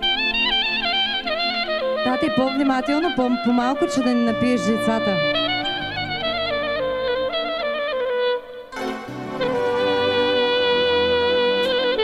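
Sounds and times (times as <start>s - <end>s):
clarinet-like lead melody: 0.0s - 12.0s
live folk band playing: 3.8s - 12.0s.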